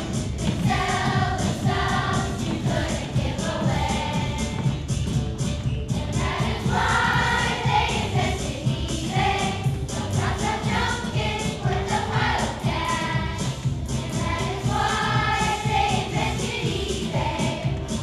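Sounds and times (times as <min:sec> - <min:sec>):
children's choir singing: 0:00.0 - 0:04.8, 0:06.0 - 0:18.0
musical accompaniment with beat: 0:00.0 - 0:18.0.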